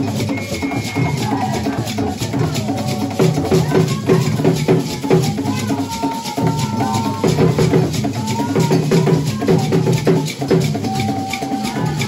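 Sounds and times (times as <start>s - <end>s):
drum ensemble rhythm: 0.0s - 12.0s.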